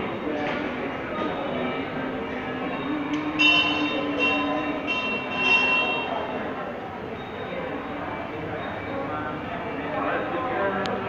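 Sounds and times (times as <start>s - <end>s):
temple bells ringing: 2.7s - 6.6s.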